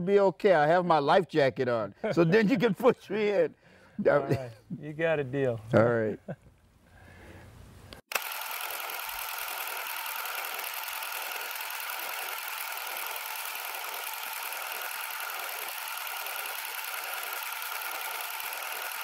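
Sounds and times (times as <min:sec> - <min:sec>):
film projector whirring: 0:08.0 - 0:19.0.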